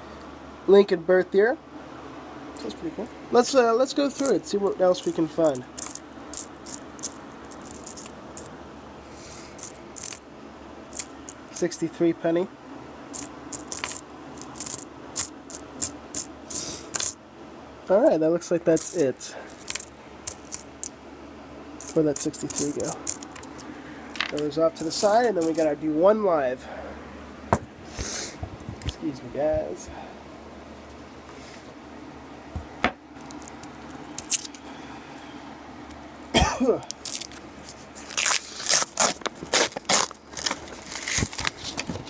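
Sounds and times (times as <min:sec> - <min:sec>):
coins clinking together: 0:03.4 - 0:08.5, 0:09.3 - 0:10.2, 0:13.2 - 0:17.2, 0:18.7 - 0:20.9, 0:21.8 - 0:25.7, 0:34.2 - 0:34.6, 0:40.8 - 0:41.8
paper wrapper crinkling and tearing: 0:37.0 - 0:42.0.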